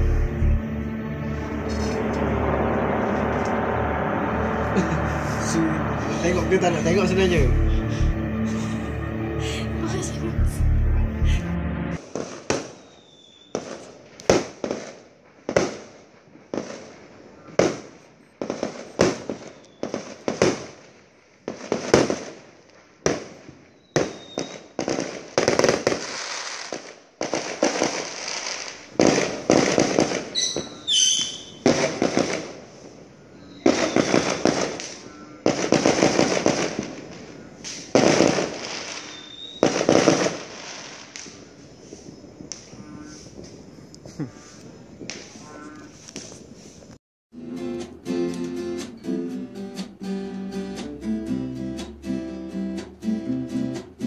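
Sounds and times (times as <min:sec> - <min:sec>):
fireworks crackling: 0:00.0 - 0:09.0, 0:11.9 - 0:47.0
fireworks bangs with echo: 0:01.6 - 0:07.8, 0:12.0 - 0:45.5
fireworks whistles: 0:01.7 - 0:08.8, 0:11.9 - 0:47.0.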